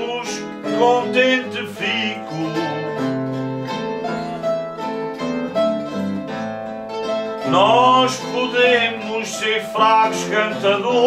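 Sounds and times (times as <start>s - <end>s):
person singing: 0.0s - 3.3s, 7.4s - 11.0s
acoustic guitar: 0.0s - 11.0s
plucked mandolin-like instrument: 0.0s - 11.0s.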